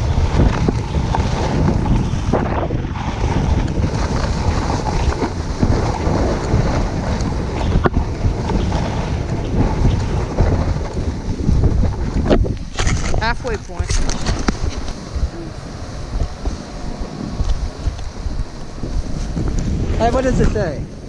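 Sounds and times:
snowboard sliding over snow: 0.0s - 21.0s
wind buffeting microphone: 0.0s - 21.0s.

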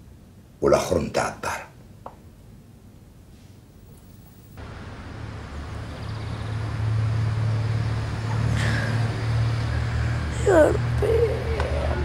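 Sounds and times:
traffic rumble: 4.4s - 12.0s.

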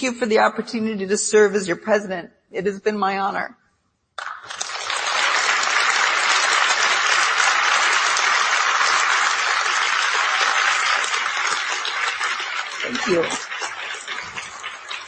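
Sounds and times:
audience applauding: 4.2s - 15.0s.

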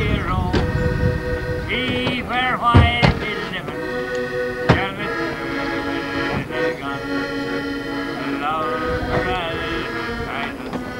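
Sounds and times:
man singing: 0.0s - 0.8s, 1.6s - 3.9s, 4.6s - 7.2s, 8.2s - 10.9s
button accordion: 0.0s - 10.9s.

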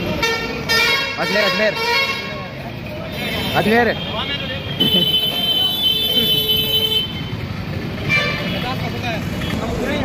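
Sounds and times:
vehicle engines running: 2.3s - 10.0s.

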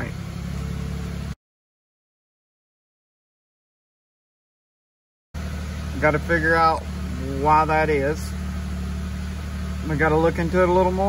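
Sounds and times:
car engine idling: 0.0s - 1.4s, 5.4s - 11.0s.

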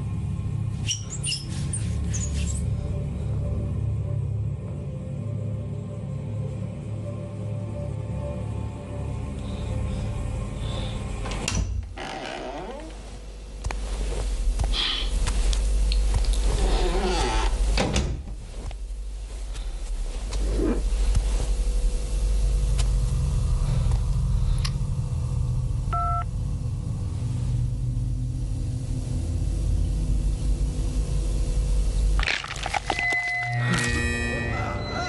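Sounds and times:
low rumbling drone: 0.0s - 35.0s
soft rustles: 12.7s - 21.8s
electronic phone beep: 26.0s - 26.2s.

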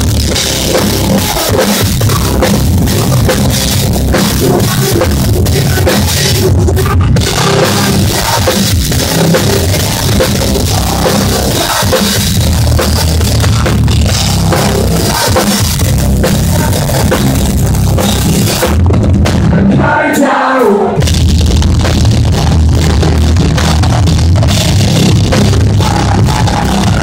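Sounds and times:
live rock band playing: 0.0s - 19.9s, 20.6s - 27.0s
drums and cymbals struck hard: 0.0s - 27.0s.

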